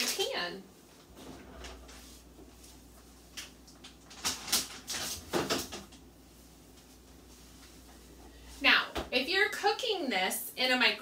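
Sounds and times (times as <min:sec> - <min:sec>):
refrigerator hum: 0:00.0 - 0:10.1.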